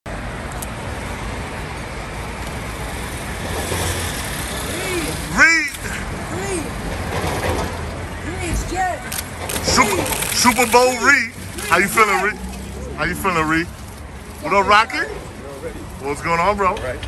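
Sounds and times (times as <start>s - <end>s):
city street traffic: 0.1s - 17.0s
people's voices: 4.6s - 17.0s.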